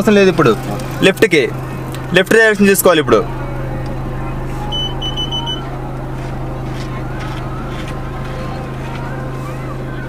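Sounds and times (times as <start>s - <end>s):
car engine idling: 0.0s - 10.0s
short high electronic beeps: 4.7s - 5.6s.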